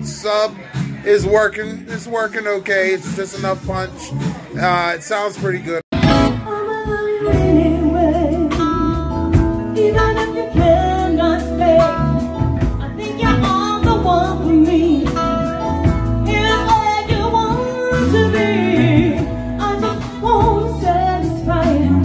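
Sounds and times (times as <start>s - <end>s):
drum kit: 0.0s - 22.0s
electric bass: 5.9s - 22.0s
electric guitar: 6.0s - 22.0s
woman singing with vibrato: 6.2s - 12.2s, 12.8s - 15.4s, 16.3s - 22.0s.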